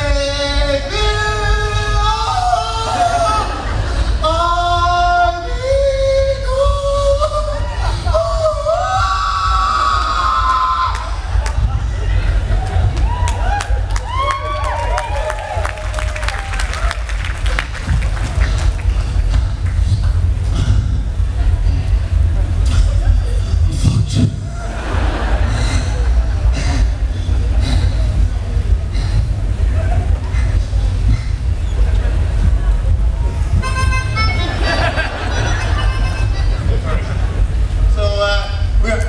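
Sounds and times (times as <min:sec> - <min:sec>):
man singing through pa: 0:00.0 - 0:10.9
heavy low rumble: 0:00.0 - 0:39.0
small wind instrument melody: 0:33.5 - 0:34.8.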